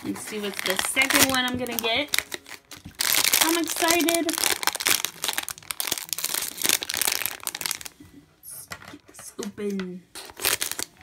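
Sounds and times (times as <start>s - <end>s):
foil pouch crinkling: 0.1s - 8.0s, 10.2s - 11.0s.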